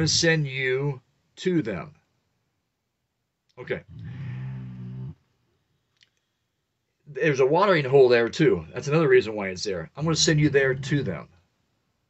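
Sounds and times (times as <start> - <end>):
man's drawn-out hesitation sound: 7.1 - 11.4.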